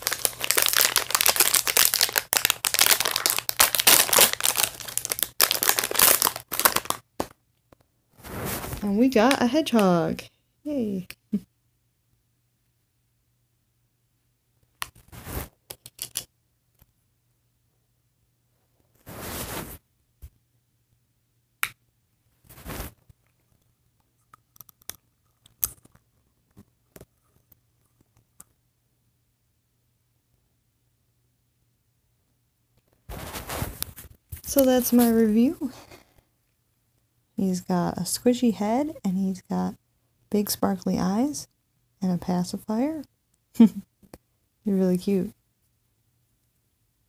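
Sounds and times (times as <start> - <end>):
foil packaging crinkling and tearing: 0.0 - 7.3.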